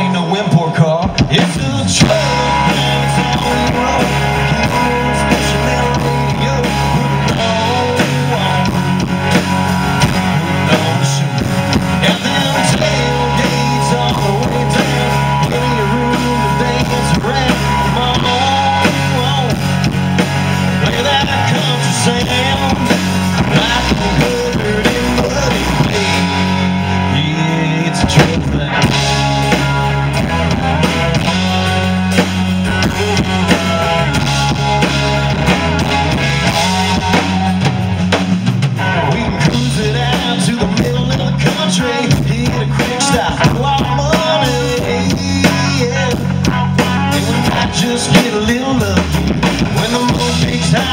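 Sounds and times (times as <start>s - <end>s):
bass guitar: 0.0s - 50.9s
drum kit: 0.0s - 50.9s
electric guitars: 0.0s - 50.9s.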